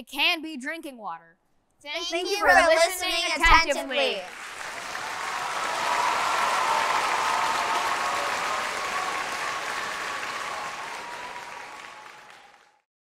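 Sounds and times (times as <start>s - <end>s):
children applauding: 4.2s - 12.9s.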